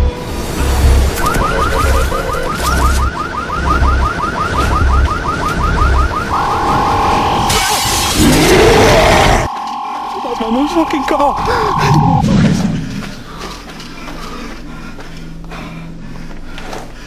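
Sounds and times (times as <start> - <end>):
rising electronic chirps: 1.2 - 8.1, 9.3 - 12.2
steady high tone: 5.9 - 8.1, 9.2 - 12.3.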